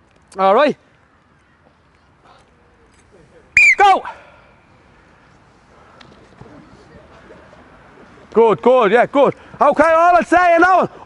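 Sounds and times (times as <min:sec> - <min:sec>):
outdoor background noise: 0:00.0 - 0:11.0
distant shouts and calls: 0:03.5 - 0:06.0.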